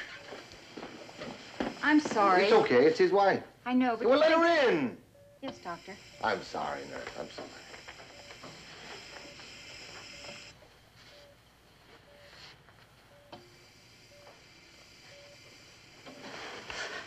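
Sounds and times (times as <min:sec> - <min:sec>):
patient monitor beeping: 0:00.0 - 0:03.2, 0:04.0 - 0:16.8
hiss: 0:13.6 - 0:17.0.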